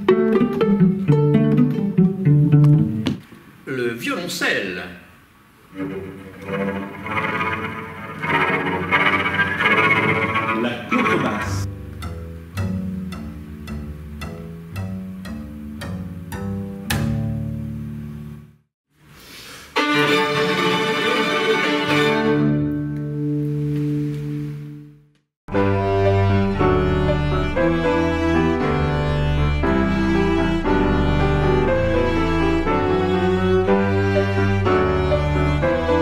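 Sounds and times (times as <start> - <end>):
bowed cello melody: 0.0 - 3.0, 5.7 - 18.4, 19.8 - 24.9, 25.5 - 36.0
double bass bowed notes: 5.7 - 18.6, 19.8 - 36.0.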